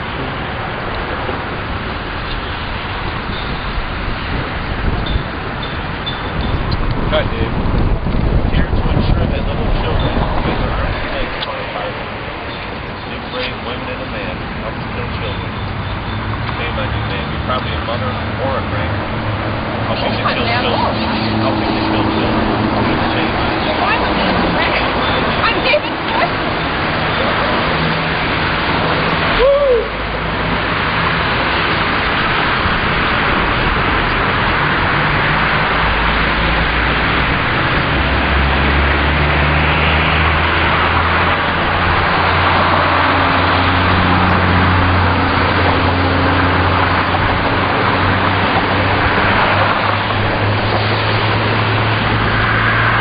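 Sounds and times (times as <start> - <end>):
loud outdoor rushing noise: 0.0 - 53.0
road traffic roar: 0.0 - 53.0
people talking: 7.1 - 7.6, 8.5 - 15.5, 16.5 - 19.0, 19.9 - 26.4.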